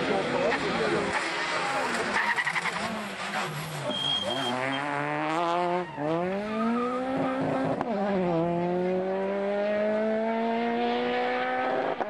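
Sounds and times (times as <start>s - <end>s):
rally car engine accelerating: 0.0s - 12.0s.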